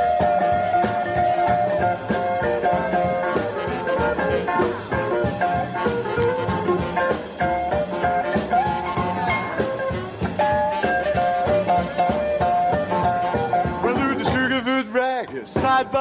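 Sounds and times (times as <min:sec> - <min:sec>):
rock and roll instrumental: 0:00.0 - 0:16.0.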